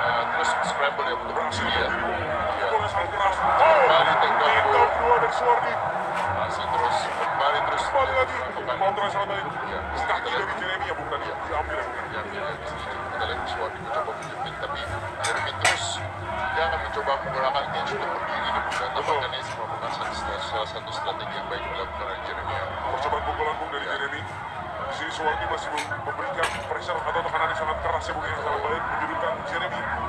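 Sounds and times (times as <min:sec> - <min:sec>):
crowd rumble: 0:00.0 - 0:30.0.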